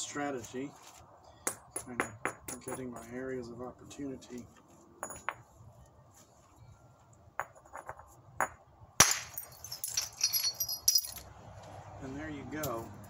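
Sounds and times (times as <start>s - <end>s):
hammerstone tapping stone: 1.4s - 3.1s
stone flakes clattering: 9.3s - 11.2s.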